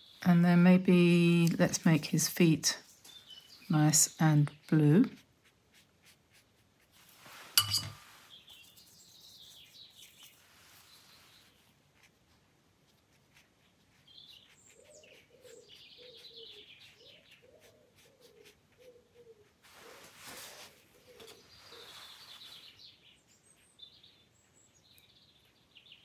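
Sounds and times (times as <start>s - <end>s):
faint birdsong chirps: 0.0s - 6.6s, 7.2s - 26.0s
dove cooing: 14.8s - 20.0s.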